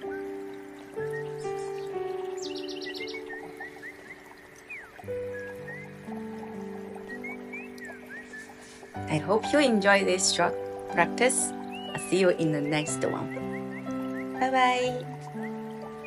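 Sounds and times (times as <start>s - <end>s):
bird chirps: 0.0s - 8.9s, 11.6s - 16.0s
calm music with held chords: 0.0s - 16.0s.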